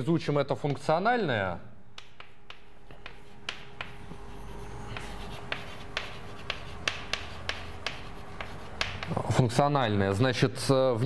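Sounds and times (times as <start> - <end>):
chalk tapping on blackboard: 1.9 - 9.4
chalk scratching strokes: 2.0 - 9.4.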